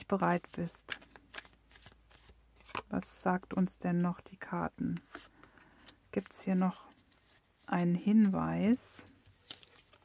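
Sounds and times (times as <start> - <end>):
playing cards flicking and rustling: 0.1 - 4.1, 4.8 - 10.0.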